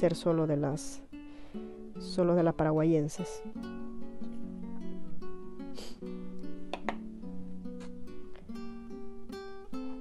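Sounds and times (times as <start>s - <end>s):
plucked acoustic guitar: 0.0s - 10.0s.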